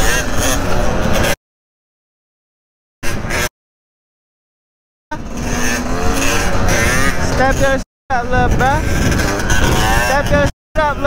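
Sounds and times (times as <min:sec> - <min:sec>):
dirt bike engine running: 0:00.0 - 0:01.4, 0:05.1 - 0:11.0
wind rushing over microphone: 0:05.1 - 0:11.0
person speaking: 0:07.1 - 0:08.9, 0:09.8 - 0:11.0.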